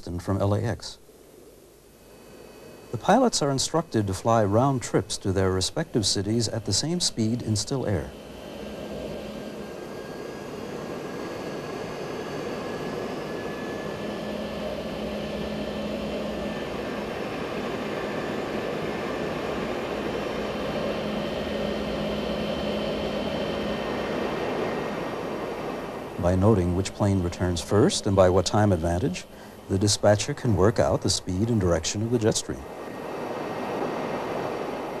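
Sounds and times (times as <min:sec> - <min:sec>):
jet engines humming: 0:00.0 - 0:35.0.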